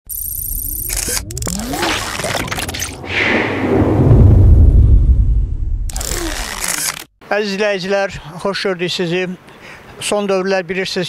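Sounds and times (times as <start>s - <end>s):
sliding electronic tones: 0.1s - 3.0s
whoosh: 1.5s - 7.0s
low rumble: 2.3s - 6.8s.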